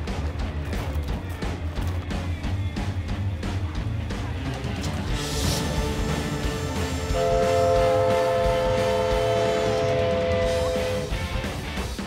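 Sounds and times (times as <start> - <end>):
guitar music: 0.4 - 12.0
multi-tone horn chord: 5.2 - 11.2.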